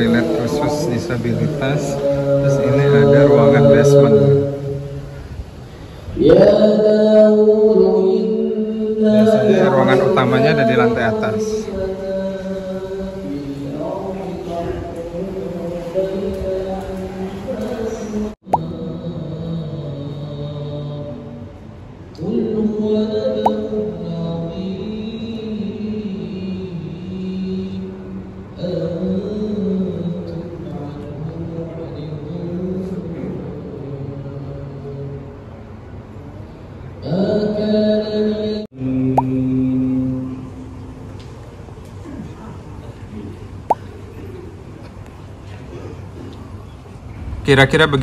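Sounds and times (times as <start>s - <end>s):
man chanting in long notes: 0.0s - 5.2s, 6.2s - 21.5s.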